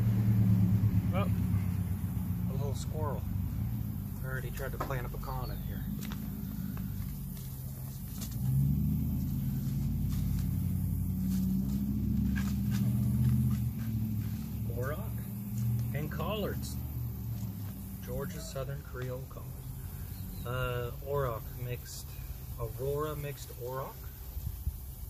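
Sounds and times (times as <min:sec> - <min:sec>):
motor engine humming: 0:00.0 - 0:23.1.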